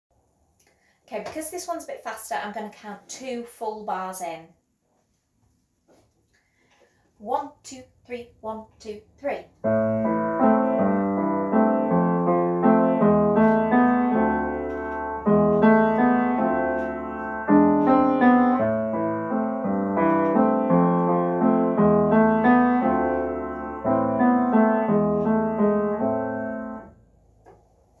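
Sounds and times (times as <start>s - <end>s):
upright piano chords: 9.5s - 27.2s.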